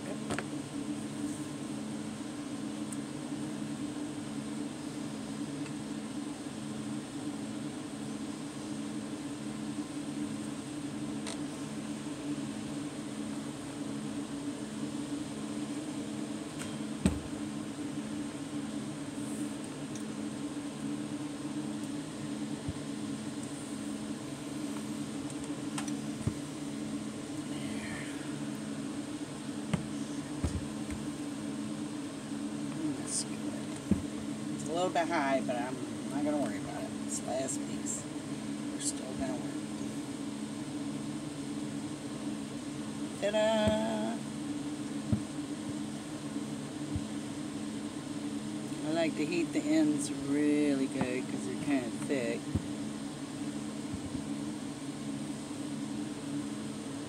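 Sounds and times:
motor humming with pulse: 0.0 - 57.0.

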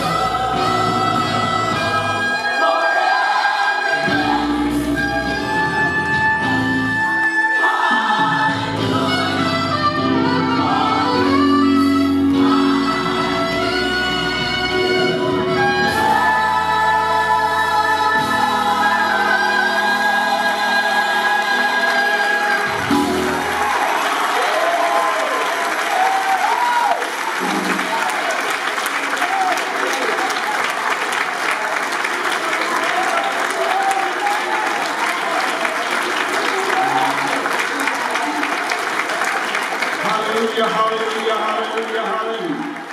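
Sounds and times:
saxophone long notes: 4.0 - 18.2
congregation applauding: 19.0 - 42.9.

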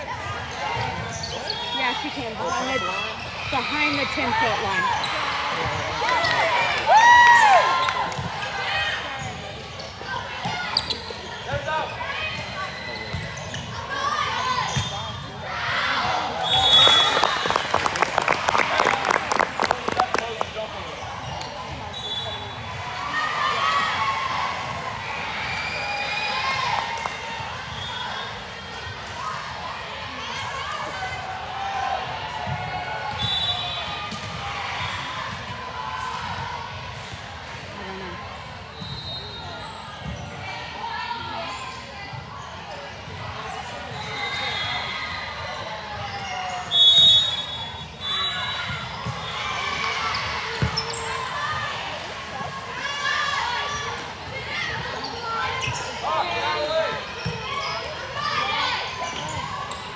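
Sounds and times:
sneaker squeaks on court: 0.8 - 3.4, 9.2 - 11.7, 14.6 - 15.3, 50.1 - 51.2, 54.8 - 56.1
crowd clapping and cheering: 16.6 - 20.7.

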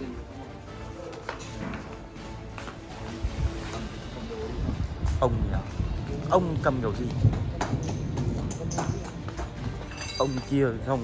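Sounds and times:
footsteps on tiles: 0.1 - 10.3.

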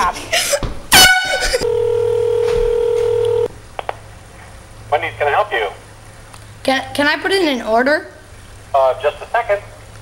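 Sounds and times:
blow horn blast: 0.9 - 1.5
people laughing: 1.2 - 1.7
telephone line tone: 1.6 - 3.5.

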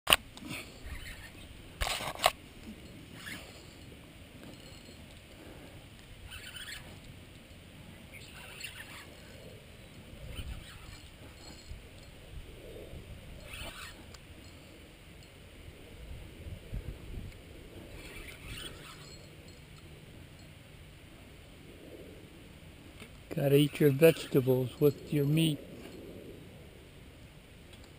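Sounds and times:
scratchy rustles and ticks: 0.1 - 12.2, 13.4 - 14.8.

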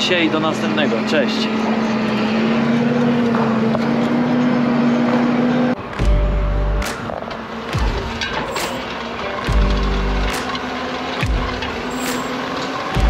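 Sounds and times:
cultivator working dry soil: 0.0 - 13.0
tractor engine hum: 0.0 - 13.0.

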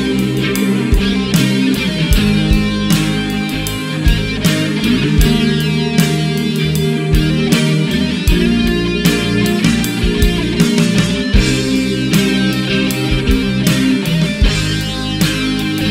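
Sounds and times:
bass: 0.0 - 15.9
electric guitar: 0.0 - 15.9
steady drum beat: 0.0 - 15.9.

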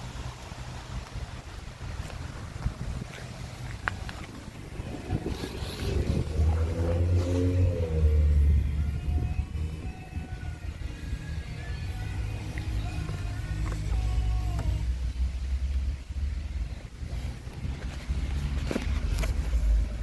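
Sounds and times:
low rumble: 0.0 - 20.0
vehicle engine revving: 1.8 - 20.0.

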